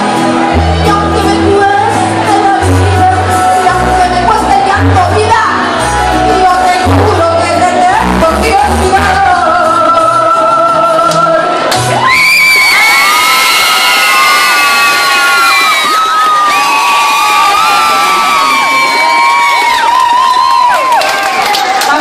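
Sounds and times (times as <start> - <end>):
bass guitar: 0.0 - 12.4
audience cheering and whooping: 11.8 - 22.0.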